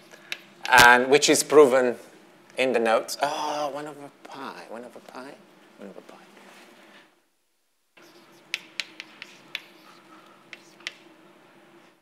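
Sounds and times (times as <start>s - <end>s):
faint room hum: 0.0s - 12.0s
chalk tapping on blackboard: 8.0s - 11.1s.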